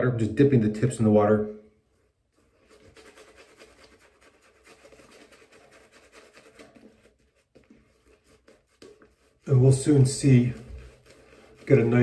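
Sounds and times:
shaving brush swishing on stubble: 0:02.3 - 0:12.0.

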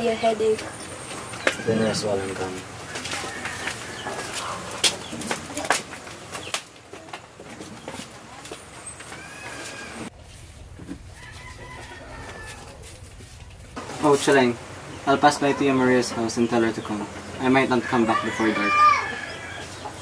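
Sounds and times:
chickens clucking: 0:00.2 - 0:10.1, 0:13.8 - 0:20.0
rooster crowing: 0:01.4 - 0:02.0, 0:02.8 - 0:04.8, 0:11.0 - 0:13.1, 0:17.6 - 0:20.0.

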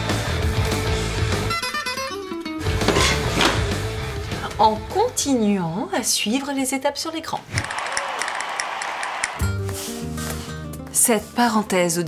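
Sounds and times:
background music with low notes: 0:00.0 - 0:05.9, 0:09.4 - 0:12.0.

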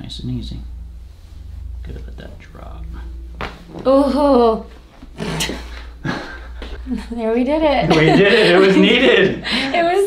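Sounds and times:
person laughing breathily: 0:05.2 - 0:06.7.

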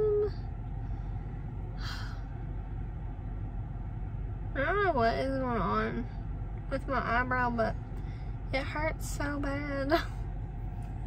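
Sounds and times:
low rumble inside a car: 0:00.0 - 0:11.0.

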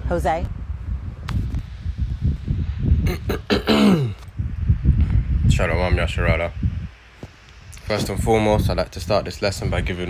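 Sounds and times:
person clearing throat: 0:03.0 - 0:04.2
low rumble: 0:04.1 - 0:07.0.

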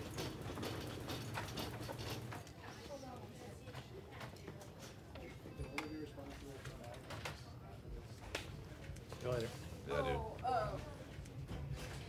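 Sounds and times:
stretcher wheels clicking and rattling: 0:00.0 - 0:02.6.

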